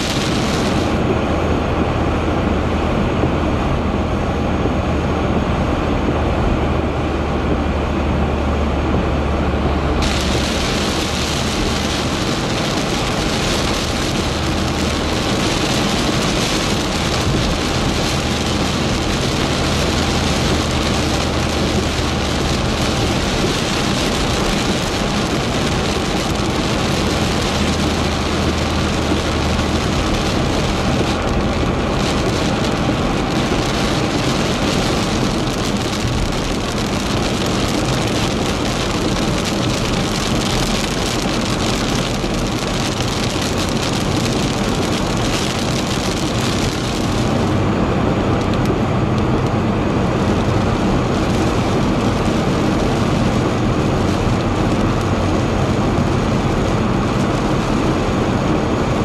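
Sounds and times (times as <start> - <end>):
tyres hissing on wet road: 0.0 - 3.3, 7.8 - 59.0
car engine: 0.0 - 59.0
heavy rain on car roof: 0.0 - 59.0.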